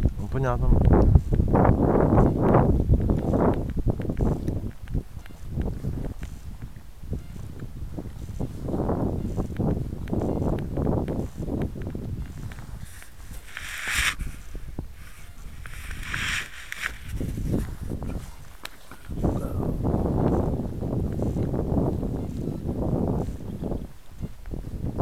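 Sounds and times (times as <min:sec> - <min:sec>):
footsteps on dry leaves and twigs: 0:00.9 - 0:24.6.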